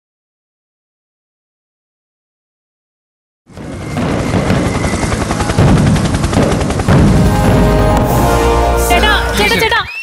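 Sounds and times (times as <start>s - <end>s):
fireworks crackling bangs: 3.5s - 8.2s.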